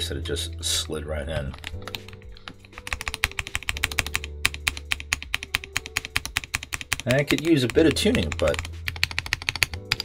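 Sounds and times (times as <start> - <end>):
mechanical keyboard typing: 1.4 - 10.0.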